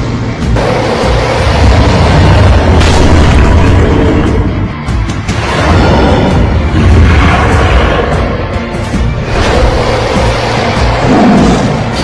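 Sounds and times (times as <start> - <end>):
booming rumbling effects: 0.0 - 12.0
dramatic film score music: 0.0 - 12.0.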